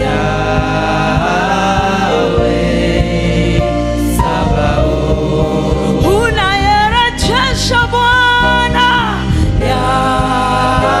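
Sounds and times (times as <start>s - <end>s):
group singing gospel music: 0.0s - 11.0s
instrumental accompaniment with beat: 0.0s - 11.0s.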